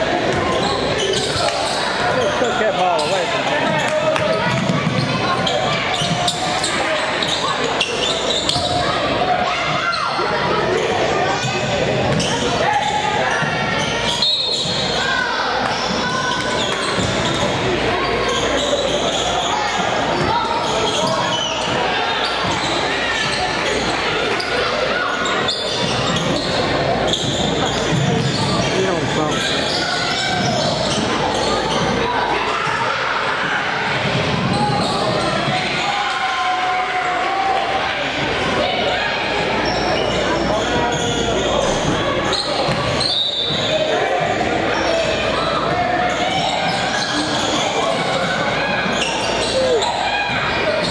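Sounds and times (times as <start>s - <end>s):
hubbub of indistinct voices: 0.0s - 50.9s
basketball bouncing on wooden court: 3.7s - 6.3s.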